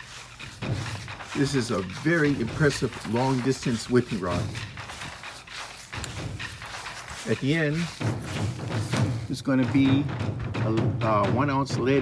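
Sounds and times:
soft footsteps on grass: 0.0 - 10.7.

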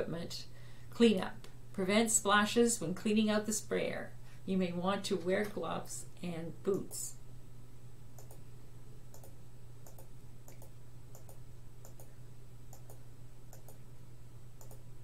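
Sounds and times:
steady low hum: 0.0 - 15.0
computer mouse clicking: 8.2 - 8.4, 9.1 - 12.1, 12.7 - 13.8, 14.6 - 14.8.

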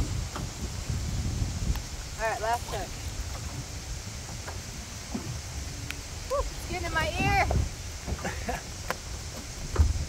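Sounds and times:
hiss of wind and water: 0.0 - 10.0
wind buffeting microphone: 0.0 - 10.0.

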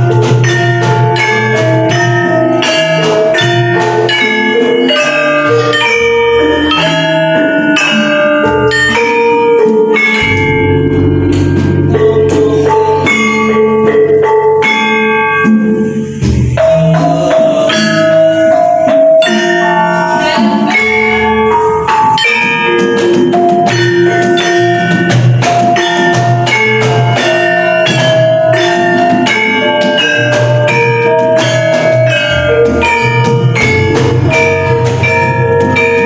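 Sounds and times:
gamelan ensemble playing: 0.0 - 36.0
deep low gong note: 10.2 - 13.2.

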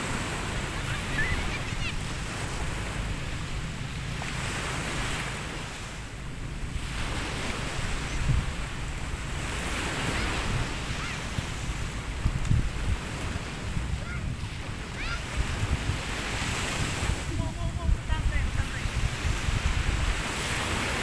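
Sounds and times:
small waves washing onto beach: 0.0 - 21.0
wind rumbling on microphone: 0.0 - 21.0.

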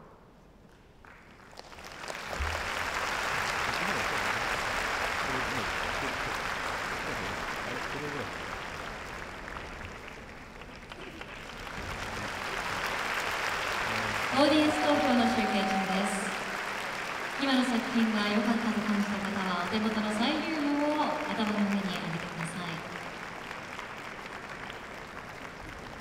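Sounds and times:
audience applauding and cheering: 1.0 - 26.0.

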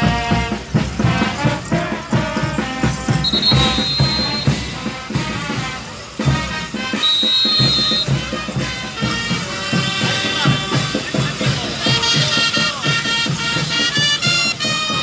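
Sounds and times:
band playing dance music: 0.0 - 15.0.

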